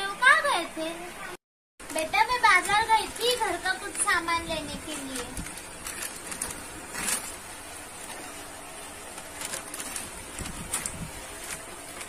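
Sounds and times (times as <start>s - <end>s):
plastic bag crinkling: 1.8s - 12.0s.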